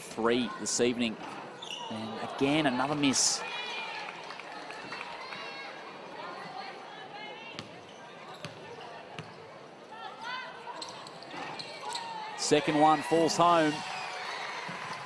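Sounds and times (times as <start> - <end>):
murmur of crowd voices: 0.0 - 13.9.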